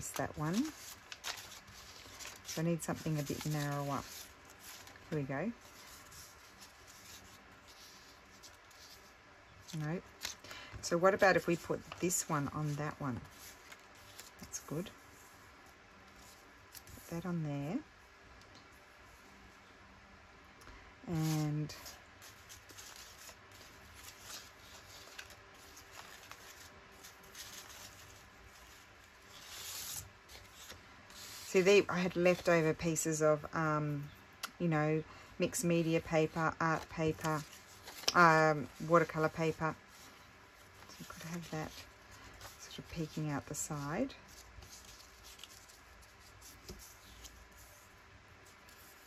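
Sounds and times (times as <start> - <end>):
paper strips rustling and sliding: 0.0 - 15.4, 21.1 - 33.1, 35.5 - 49.0.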